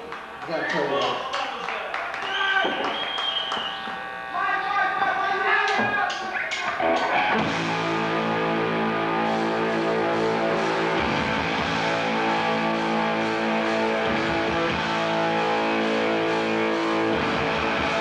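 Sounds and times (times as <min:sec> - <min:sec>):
rock band playing: 0:06.4 - 0:18.0
electric guitar sustained chords: 0:06.8 - 0:18.0.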